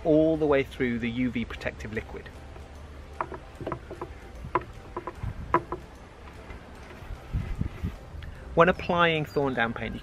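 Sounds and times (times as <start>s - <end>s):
stirrer knocks and clicks: 3.2s - 5.9s.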